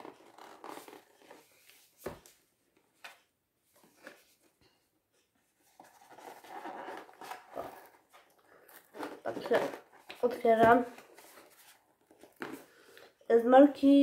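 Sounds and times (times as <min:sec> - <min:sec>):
packaging rustling: 0:05.7 - 0:12.9.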